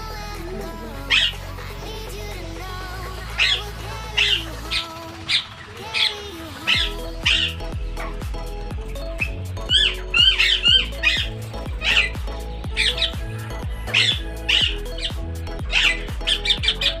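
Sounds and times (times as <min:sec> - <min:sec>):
background music with bass: 0:00.0 - 0:17.0
parakeet squawking: 0:00.6 - 0:01.6, 0:03.2 - 0:17.0.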